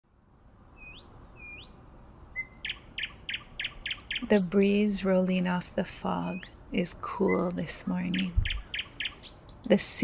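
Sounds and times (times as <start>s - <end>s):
small birds singing: 0.6s - 10.0s.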